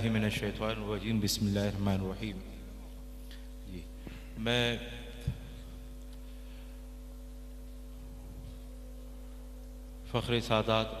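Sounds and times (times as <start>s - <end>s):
man speaking into microphone: 0.0s - 2.9s, 3.6s - 5.5s, 10.0s - 11.0s
electrical hum of sound system: 0.0s - 11.0s.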